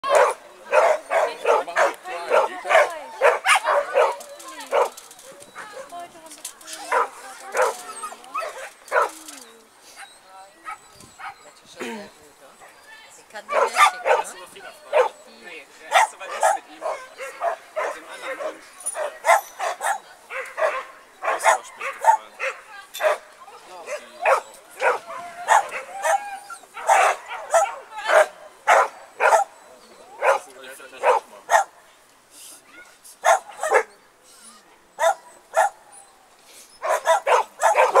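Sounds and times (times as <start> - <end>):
dog barking: 0.0 - 5.0, 6.9 - 9.2, 13.5 - 15.2, 15.9 - 23.3, 23.9 - 26.2, 26.8 - 29.6, 30.2 - 31.8, 33.2 - 33.9, 35.0 - 35.8, 36.8 - 38.0.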